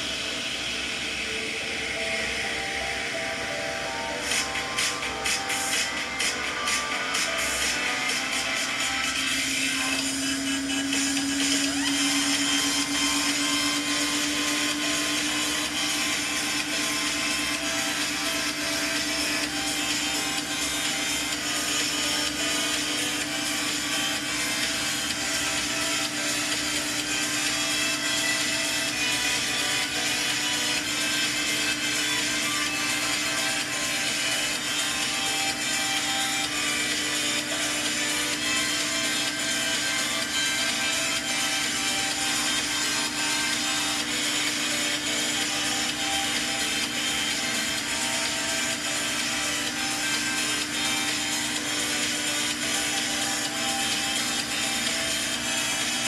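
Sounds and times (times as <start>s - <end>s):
washing machine motor hum: 0.0s - 56.0s.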